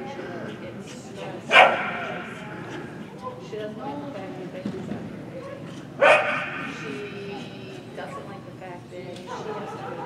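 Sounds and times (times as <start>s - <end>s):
faint voices: 0.0s - 10.0s
dog barking sharply: 1.5s - 2.2s, 6.0s - 6.7s.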